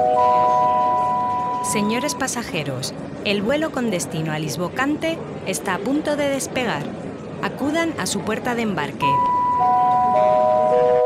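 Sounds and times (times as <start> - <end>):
descending public-address chime: 0.0 - 2.9, 8.8 - 11.0.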